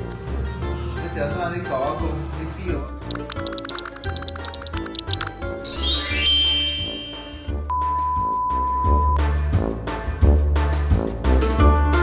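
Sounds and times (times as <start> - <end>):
light plucked background music: 0.0 - 9.7
steady test tone beep: 3.1 - 9.2
rising glide sound effect: 5.7 - 7.6.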